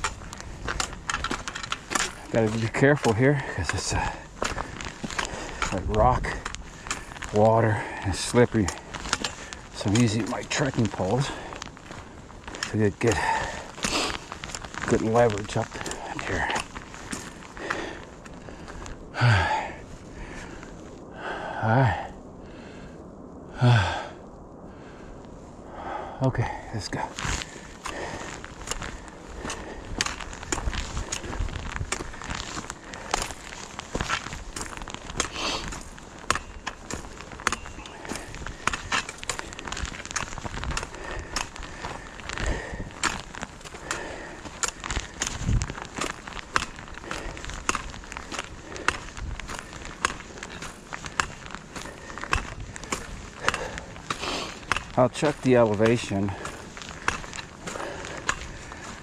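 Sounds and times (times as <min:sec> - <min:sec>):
trekking poles clicking on rock: 0:00.0 - 0:19.6, 0:26.9 - 0:59.0
footsteps crunching on gravel: 0:00.0 - 0:21.1, 0:26.4 - 0:59.0
heavy breathing and sighs: 0:00.0 - 0:59.0.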